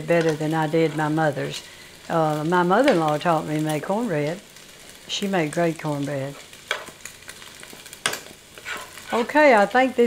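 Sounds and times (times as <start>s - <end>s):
bacon sizzling in a skillet: 0.0s - 10.0s
metal spoon scraping a pan: 7.6s - 9.5s.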